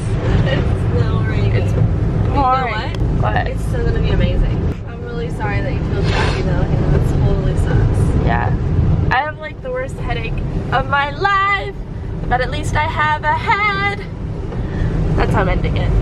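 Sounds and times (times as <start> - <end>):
voices talking: 0.0 - 8.5
road and engine rumble: 0.0 - 16.0.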